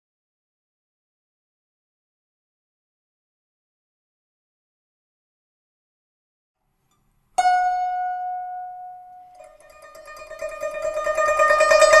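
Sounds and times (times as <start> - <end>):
guzheng tremolo: 7.4 - 12.0
plucked guzheng string: 7.4 - 12.0.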